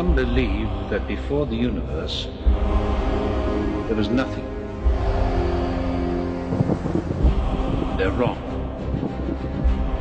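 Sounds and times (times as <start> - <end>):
low rumbling drone: 0.0 - 10.0
deep boom: 2.3 - 10.0.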